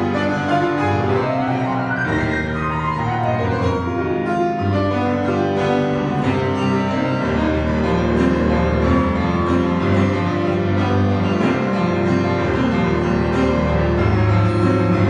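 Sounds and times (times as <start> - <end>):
grand piano improvisation: 0.0 - 15.0.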